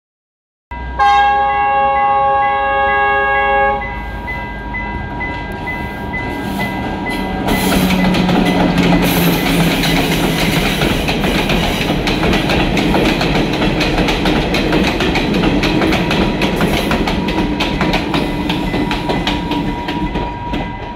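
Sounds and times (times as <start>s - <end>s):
train horn: 0.7s - 4.1s
train engine droning: 0.7s - 20.9s
wheels clattering over rail joints: 7.0s - 20.9s.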